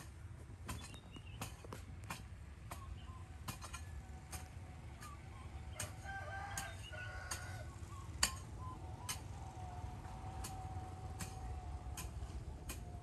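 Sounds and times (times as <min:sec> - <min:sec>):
rooster crowing: 0:05.7 - 0:07.9.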